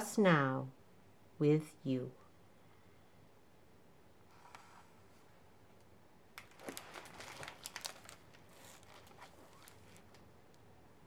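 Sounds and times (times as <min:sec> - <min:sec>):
book paper rustling: 0:06.4 - 0:10.3.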